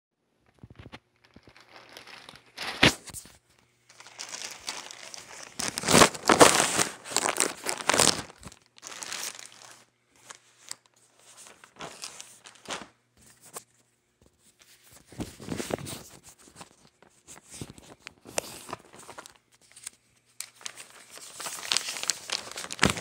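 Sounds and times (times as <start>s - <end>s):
plastic bag crinkling and tearing: 0.6s - 3.2s, 3.9s - 12.9s, 17.7s - 23.0s.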